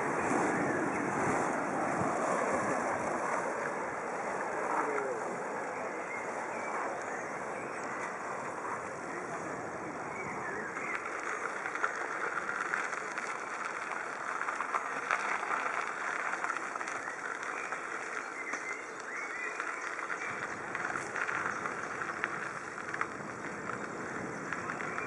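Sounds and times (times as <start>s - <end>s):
wheels rolling over gravel: 0.0s - 25.0s.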